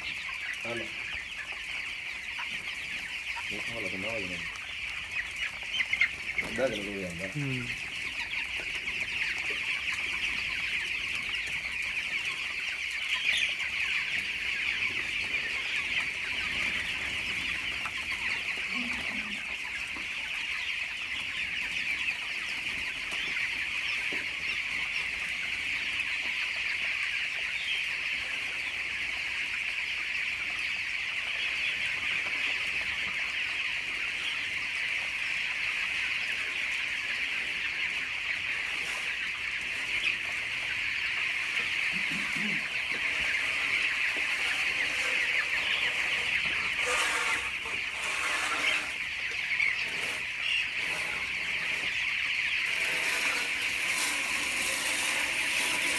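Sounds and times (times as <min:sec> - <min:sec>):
chicks peeping: 0:00.0 - 0:55.9.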